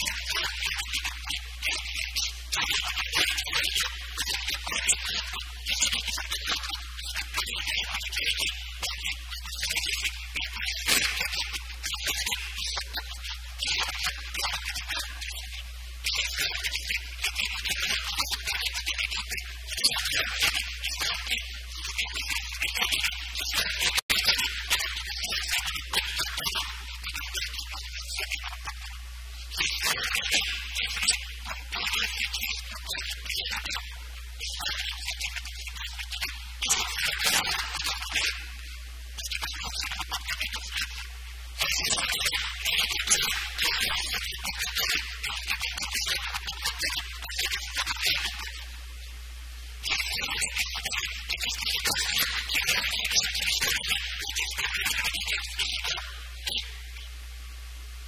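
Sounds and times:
low electrical hum: 0:00.0 - 0:58.0
recording hiss: 0:00.0 - 0:58.0.

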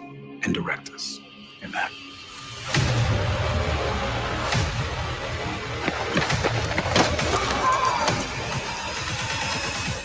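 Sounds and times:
dramatic trailer music: 0:00.0 - 0:10.0.

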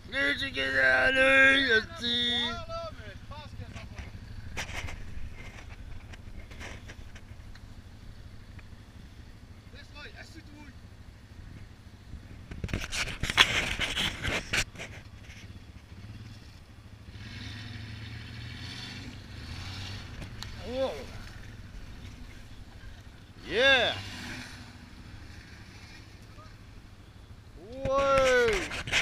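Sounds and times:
quad engine running under load: 0:00.0 - 0:29.0
loud knocks and scrapes: 0:03.7 - 0:07.5, 0:12.5 - 0:15.6, 0:28.0 - 0:29.0.

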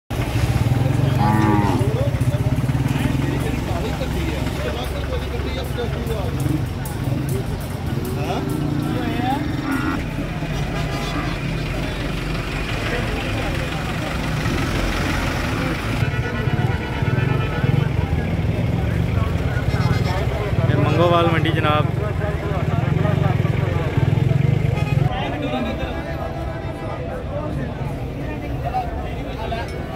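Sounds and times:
people calling and talking: 0:00.1 - 0:29.9.

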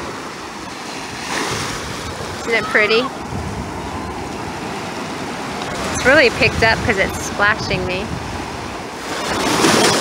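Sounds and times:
small waves washing on sand: 0:00.0 - 0:10.0.

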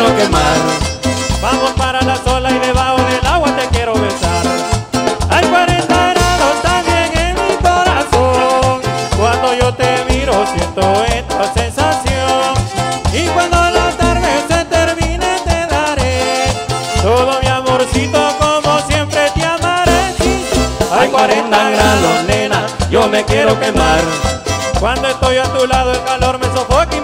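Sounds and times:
live band playing cumbia: 0:00.0 - 0:27.0.

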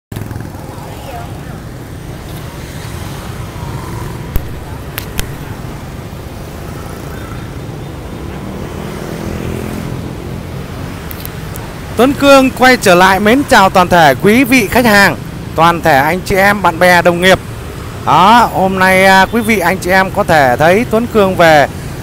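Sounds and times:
traffic rumble: 0:00.1 - 0:22.0
sharp clicks: 0:04.3 - 0:05.5.

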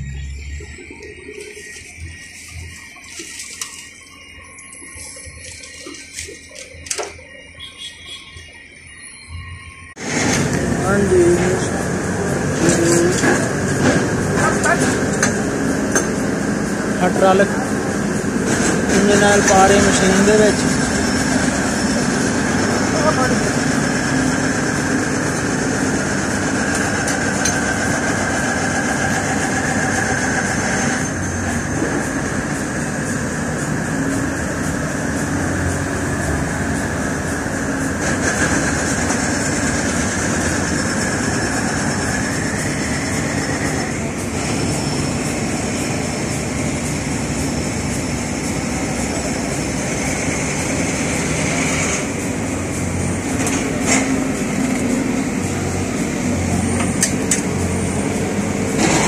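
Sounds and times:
heavy machinery running: 0:00.0 - 0:59.0
indistinct voices: 0:08.3 - 0:59.0.

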